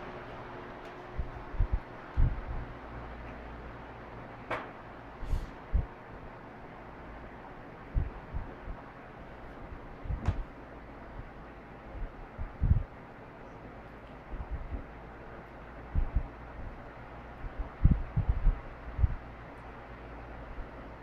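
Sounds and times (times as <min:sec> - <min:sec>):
faint motor hum: 0:00.0 - 0:21.0
fan air rushing: 0:00.0 - 0:21.0
wind buffeting microphone: 0:01.2 - 0:02.7, 0:12.0 - 0:12.9, 0:17.4 - 0:19.2.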